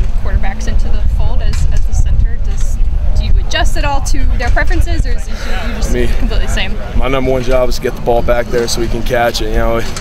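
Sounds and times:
constant low rumble: 0:00.0 - 0:10.0
man asking a question: 0:05.4 - 0:10.0.

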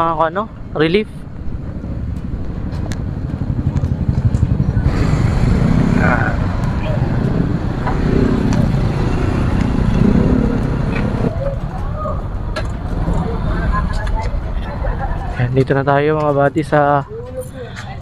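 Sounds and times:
motorcycle engine low rumble: 0:00.0 - 0:15.2.

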